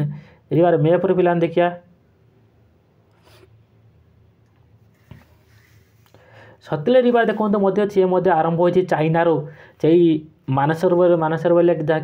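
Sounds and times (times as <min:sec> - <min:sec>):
soft rustle: 0:04.6 - 0:06.2.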